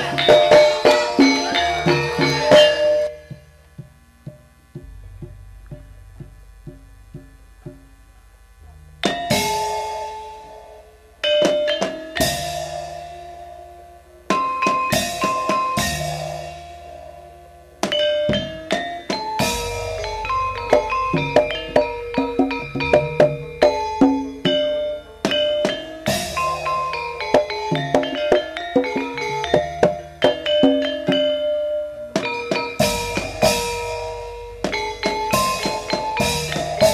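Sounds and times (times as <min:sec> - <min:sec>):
gamelan music: 0:00.0 - 0:03.7, 0:08.6 - 0:36.9
crashing cymbals: 0:09.0 - 0:30.2, 0:32.2 - 0:36.9.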